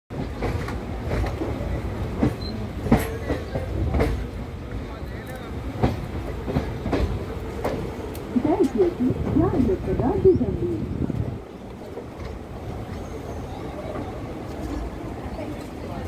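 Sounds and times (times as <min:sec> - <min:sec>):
train coaches rumbling on track: 0:00.1 - 0:16.0.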